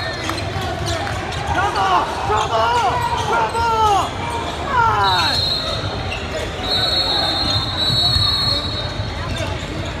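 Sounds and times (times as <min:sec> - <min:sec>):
high steady whistle-like tone: 0:05.1 - 0:05.9, 0:06.6 - 0:09.2.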